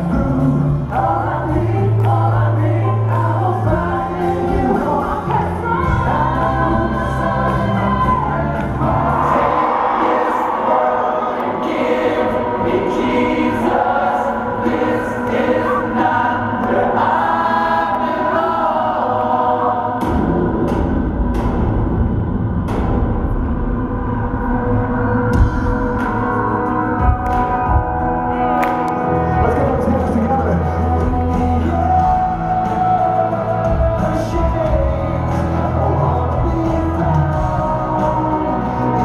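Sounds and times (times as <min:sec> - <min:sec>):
held choir-like voices: 0:00.0 - 0:21.7, 0:24.7 - 0:39.0
live band music with singing: 0:00.0 - 0:39.0.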